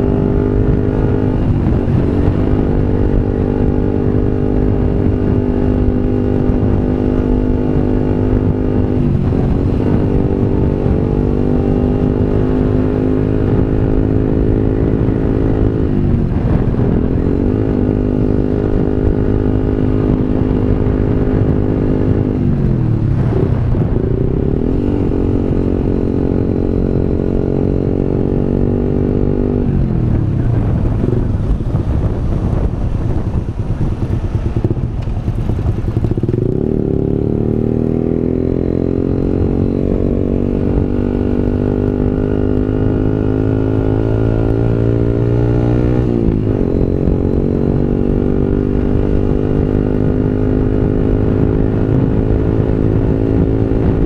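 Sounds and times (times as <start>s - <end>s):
motorcycle engine revving: 0.0s - 54.0s
wind noise on microphone: 0.0s - 54.0s.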